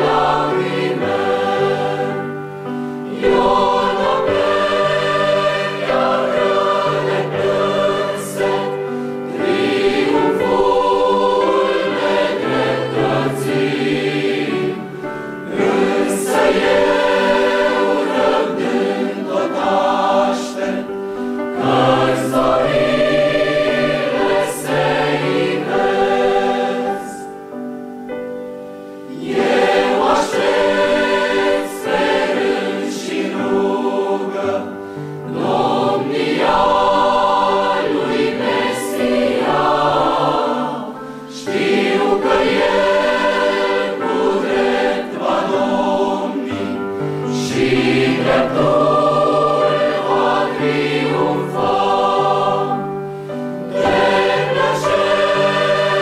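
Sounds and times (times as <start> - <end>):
mixed choir singing a hymn: 0.0 - 28.2, 28.9 - 56.0.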